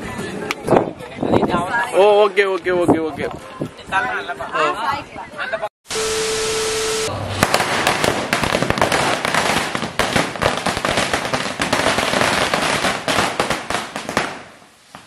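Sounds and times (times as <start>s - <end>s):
firecrackers banging: 7.3s - 15.0s.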